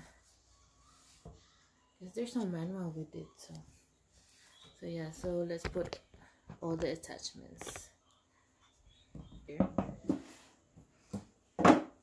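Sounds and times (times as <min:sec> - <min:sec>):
knock of objects set down: 0:11.1 - 0:12.0.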